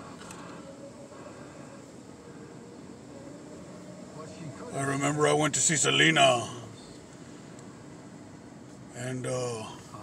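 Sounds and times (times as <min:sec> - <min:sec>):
car rolling low rumble: 0:00.0 - 0:10.0.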